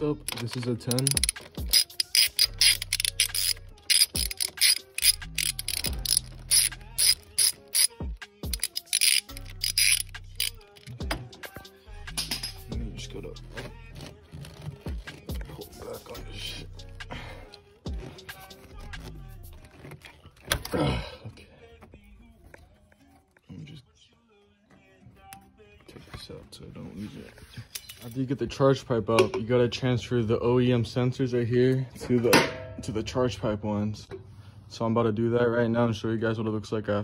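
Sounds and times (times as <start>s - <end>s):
hand ratchet clicking: 0.2s - 11.2s.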